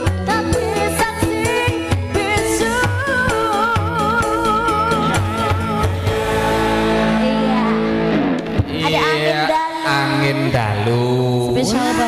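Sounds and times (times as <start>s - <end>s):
live band accompaniment: 0.0s - 12.0s.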